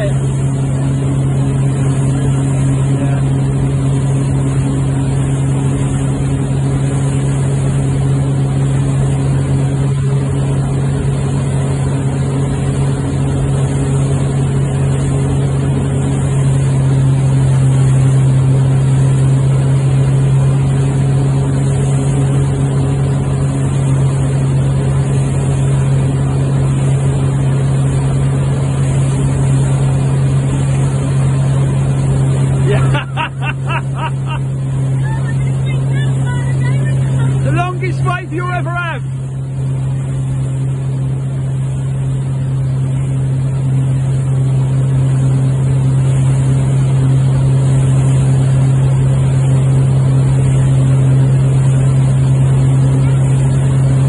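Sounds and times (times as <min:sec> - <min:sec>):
motorboat engine drone: 0:00.0 - 0:54.0
water rushing in wake: 0:00.0 - 0:54.0.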